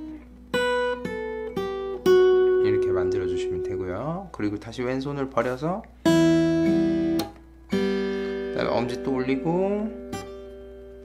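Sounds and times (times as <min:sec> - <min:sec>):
fingerstyle acoustic guitar: 0:00.0 - 0:11.0.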